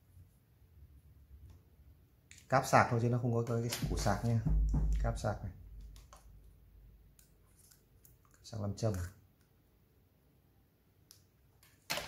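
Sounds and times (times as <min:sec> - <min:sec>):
handling smartwatch and cable: 0:05.7 - 0:09.6.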